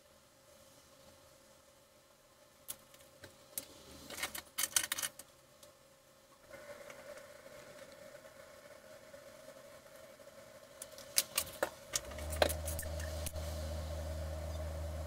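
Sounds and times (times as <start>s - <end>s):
faint steady whine: 0.0s - 15.0s
low electrical hum: 0.0s - 15.0s.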